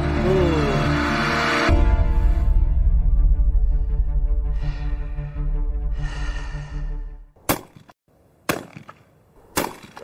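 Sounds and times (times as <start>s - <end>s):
dramatic background music: 0.0s - 7.4s
shotgun shots: 8.5s - 10.0s.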